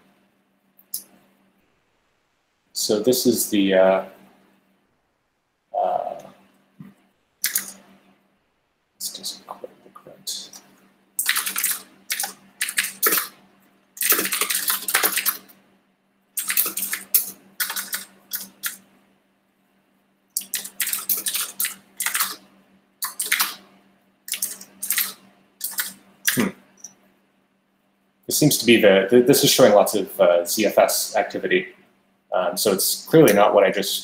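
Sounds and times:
faint steady hum: 0.0 - 34.0
keyboard typing: 7.4 - 7.8, 10.5 - 13.3, 14.0 - 15.5, 16.4 - 18.8, 20.4 - 22.4, 23.0 - 23.6, 24.3 - 26.9.

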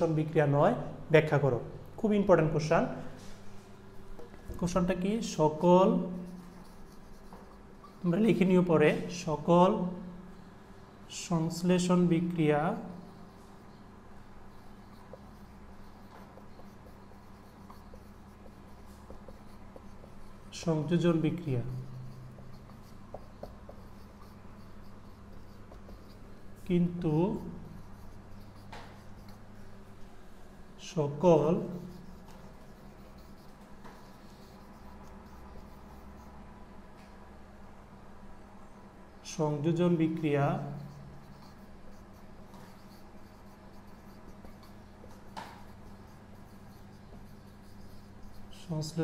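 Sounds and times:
marker writing on whiteboard: 2.6 - 10.2, 11.7 - 30.4, 31.2 - 36.4, 40.0 - 49.0.

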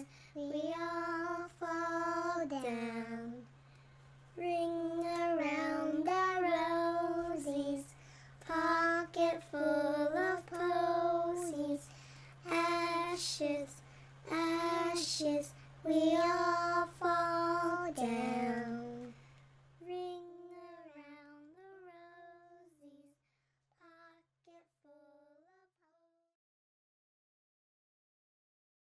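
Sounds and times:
child singing unaccompanied: 0.0 - 3.5, 4.4 - 19.2, 19.8 - 23.2, 23.8 - 26.2
steady low hum: 0.0 - 23.5.

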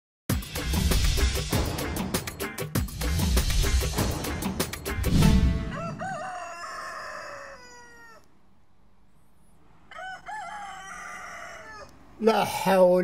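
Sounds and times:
theme music final hit: 0.3 - 5.9
rooster crowing: 5.4 - 8.3, 9.8 - 12.0.

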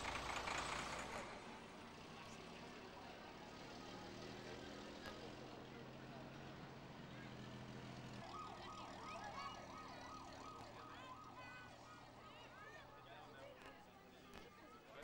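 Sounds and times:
fire engine running: 0.0 - 15.0
siren wailing: 8.2 - 12.6.

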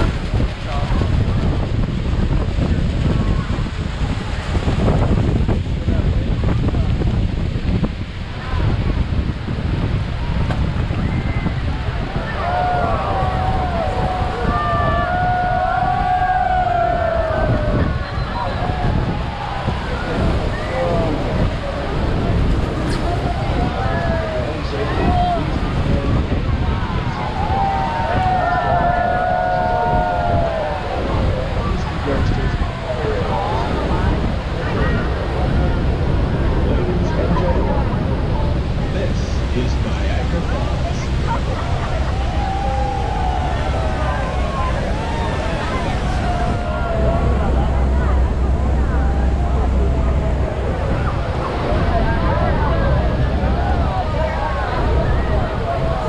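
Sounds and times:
crowd chattering and calling out: 0.0 - 56.0
waterfall rushing: 0.0 - 56.0
wind on microphone: 0.0 - 56.0.

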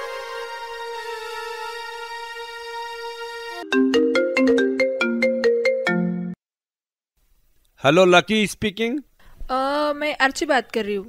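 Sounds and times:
background music held note: 0.0 - 4.8
phone ringtone melody: 3.6 - 6.4.

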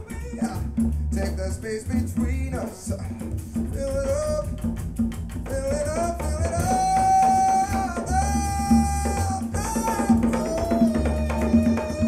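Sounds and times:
jazz vocal music over loudspeakers: 0.0 - 4.7, 5.4 - 12.0.

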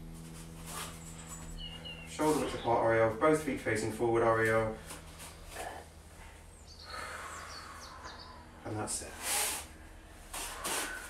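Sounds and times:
person exhaling slowly: 6.8 - 8.4.

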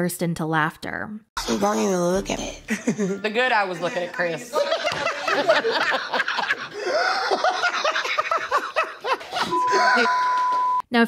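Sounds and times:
people laughing: 2.7 - 10.5
censor bleep: 9.5 - 10.9.

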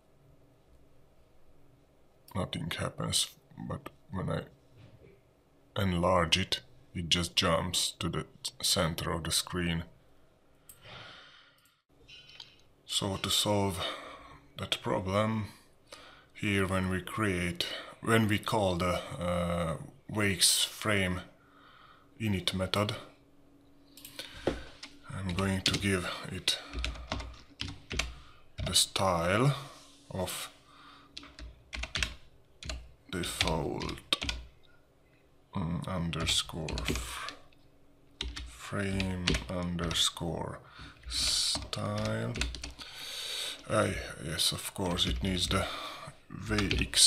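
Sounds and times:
faint breath noise: 10.2 - 12.6, 13.7 - 14.6, 15.5 - 16.4, 21.3 - 22.2, 23.8 - 25.1, 26.0 - 28.6, 29.4 - 31.4, 40.6 - 41.4, 42.7 - 44.1, 45.5 - 46.3
typing on computer keyboard: 26.7 - 28.7, 31.2 - 34.5, 38.2 - 40.0, 41.2 - 42.8.

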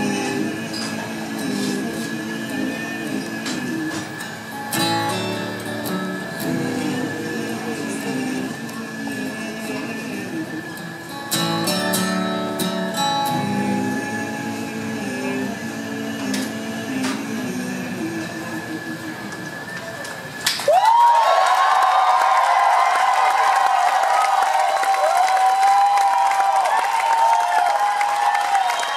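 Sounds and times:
guitar notes ringing: 0.0 - 8.4
steady high mechanical whistle: 0.0 - 22.3, 24.8 - 28.9
audience applause and cheering: 20.6 - 28.9.

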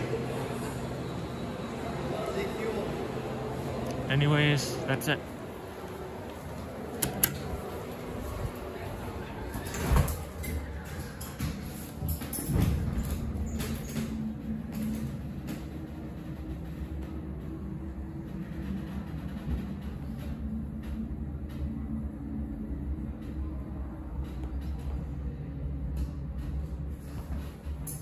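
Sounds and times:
elevator low hum: 0.0 - 28.0.

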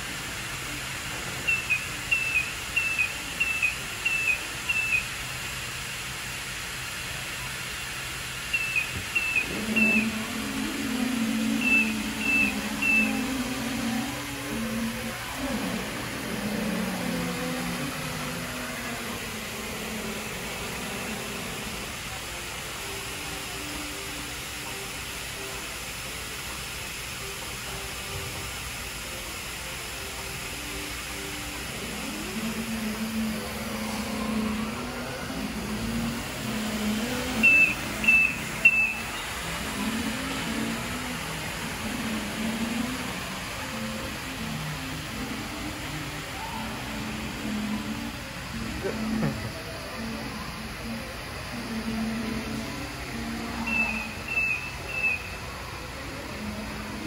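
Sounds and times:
floor scrubber humming: 8.5 - 23.0, 29.1 - 54.3.

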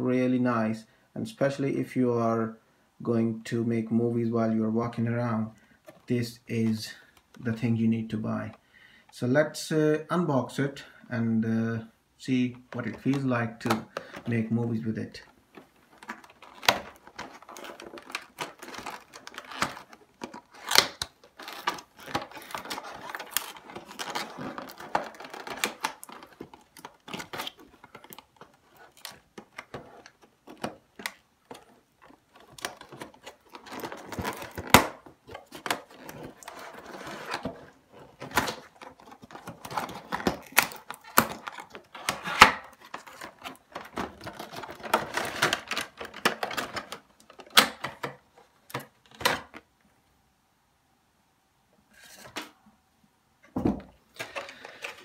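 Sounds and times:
cardboard box being opened: 16.0 - 47.7.

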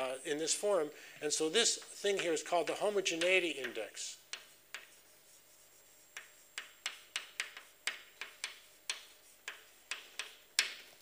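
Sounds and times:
chalk tapping on blackboard: 3.1 - 11.0.

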